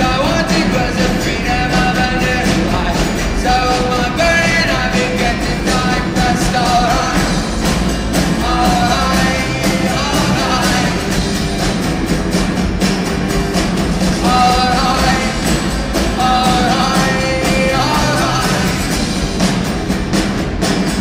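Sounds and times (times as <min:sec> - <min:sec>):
live folk-rock band playing: 0:00.0 - 0:21.0.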